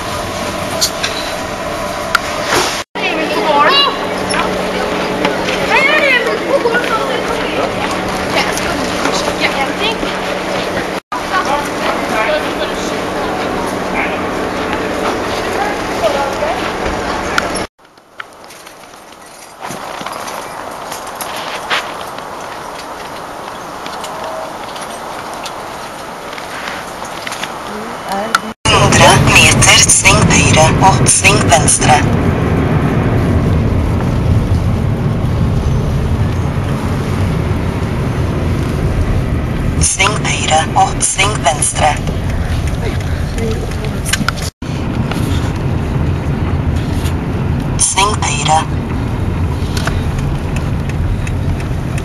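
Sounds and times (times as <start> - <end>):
car road and engine noise: 0.0 - 52.0
steady background noise: 0.0 - 52.0
loud close voices: 3.0 - 17.2, 27.7 - 32.2, 39.8 - 44.3.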